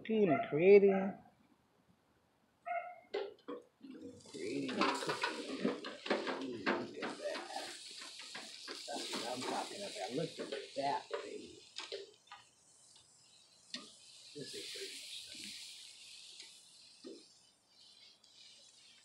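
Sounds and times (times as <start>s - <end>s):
metal clicking on grill grate: 3.1s - 19.0s
meat sizzling on a grill: 3.8s - 19.0s.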